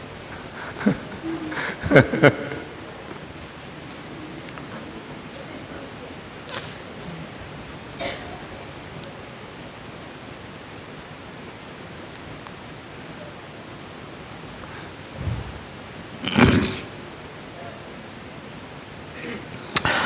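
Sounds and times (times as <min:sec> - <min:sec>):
microphone background hiss: 0:00.0 - 0:20.0.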